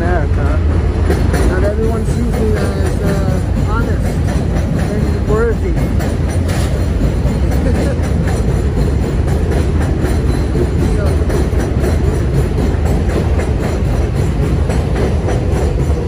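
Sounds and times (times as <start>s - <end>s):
elevated train rumbling on steel tracks: 0.0s - 16.0s.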